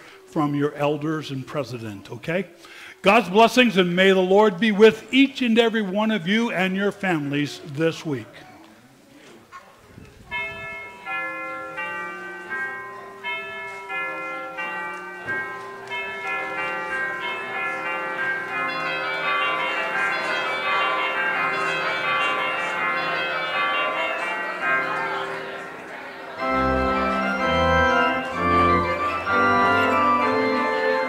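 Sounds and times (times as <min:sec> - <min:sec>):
church bells ringing a peal: 0:10.3 - 0:31.0.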